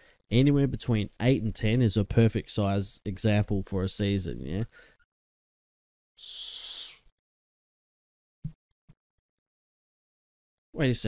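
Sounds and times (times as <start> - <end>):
short sharp hiss: 6.2 - 7.1.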